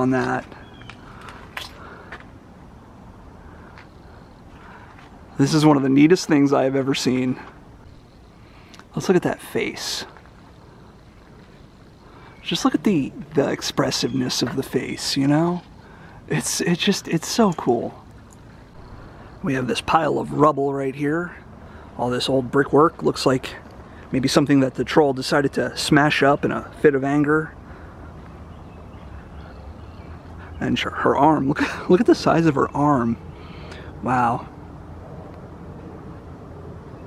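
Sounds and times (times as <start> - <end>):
low outdoor rumble and hiss: 0.0 - 37.0.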